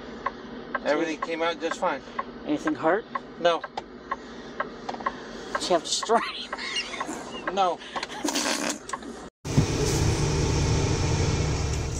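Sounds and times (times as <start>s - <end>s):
truck engine rumble: 8.9s - 11.9s.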